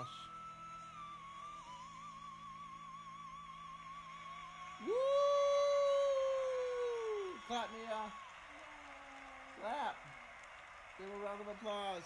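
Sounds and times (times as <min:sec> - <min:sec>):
man shouting woo: 0:04.8 - 0:09.9.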